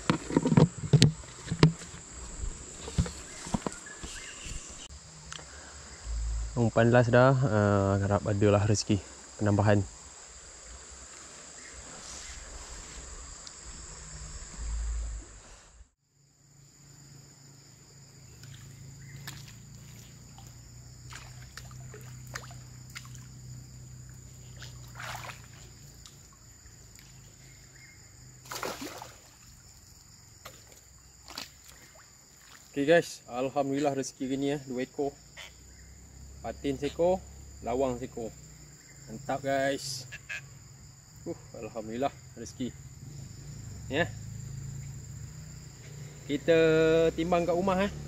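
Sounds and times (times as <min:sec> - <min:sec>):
insects chirring: 0:00.0 - 0:48.0
water sloshing and splashing: 0:18.3 - 0:23.4, 0:24.0 - 0:27.3, 0:28.4 - 0:29.8, 0:30.4 - 0:32.8.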